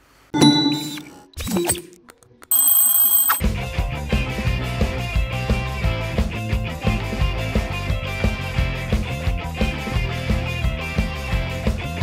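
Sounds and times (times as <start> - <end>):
bright ringing bell tone: 0.4 - 1.3, 2.5 - 3.4
upbeat rock background music: 3.4 - 12.0.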